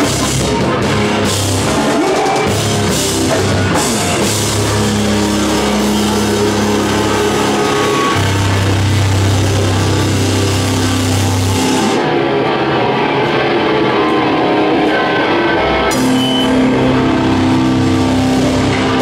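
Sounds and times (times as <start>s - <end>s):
bass guitar: 0.0s - 19.0s
distorted electric guitars: 0.0s - 19.0s.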